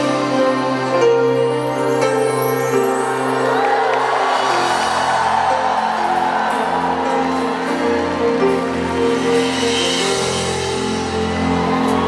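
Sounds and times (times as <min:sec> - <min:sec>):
slow tender live concert music: 0:00.0 - 0:12.0
arena crowd cheering and whooping: 0:02.2 - 0:12.0.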